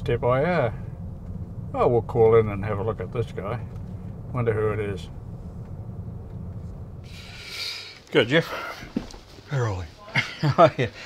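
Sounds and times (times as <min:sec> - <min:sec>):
car engine and road noise: 0:00.0 - 0:11.0
broad hiss: 0:07.0 - 0:09.6.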